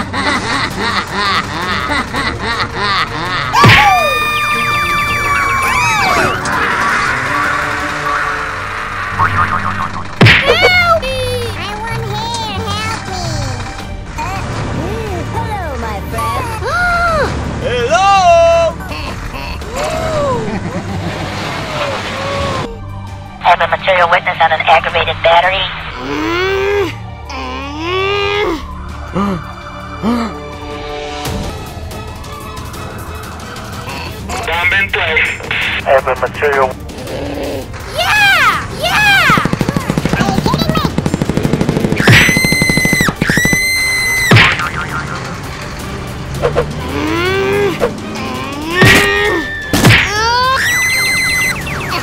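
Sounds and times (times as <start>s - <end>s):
backing music: 3.5s - 10.9s, 23.0s - 26.0s, 30.4s - 38.0s
loud cartoon whack: 3.6s - 4.1s, 10.0s - 10.8s, 42.0s - 44.8s, 48.8s - 50.3s
comic gobbling warbling trill: 9.0s - 10.6s, 42.0s - 45.3s
wobbling boing tones: 9.2s - 10.2s.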